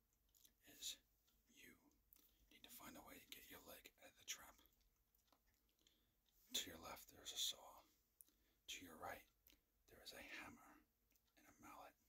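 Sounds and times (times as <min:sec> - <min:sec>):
man whispering: 0:00.4 - 0:04.8, 0:05.8 - 0:12.0.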